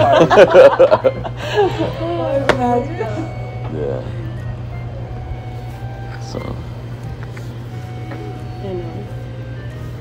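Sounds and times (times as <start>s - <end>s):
faint background music: 0.0s - 10.0s
steady low hum: 0.0s - 10.0s.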